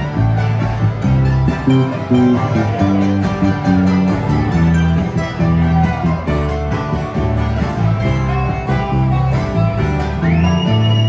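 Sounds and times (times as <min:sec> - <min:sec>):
acoustic guitars picking and strumming: 0:00.0 - 0:11.0
bass line: 0:00.0 - 0:11.0
mandolin: 0:00.0 - 0:11.0.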